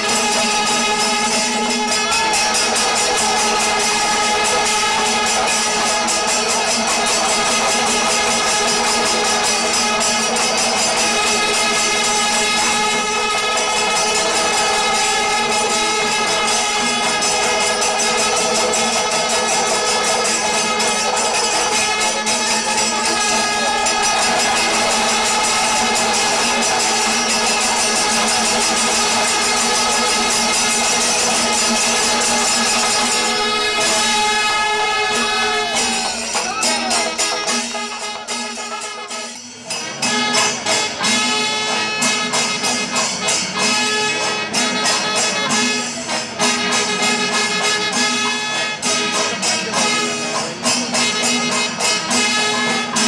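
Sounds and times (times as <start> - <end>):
droning wind instruments: 0.0 - 53.0
drums and hand cymbals beating: 0.0 - 53.0
horns holding steady notes: 0.0 - 53.0.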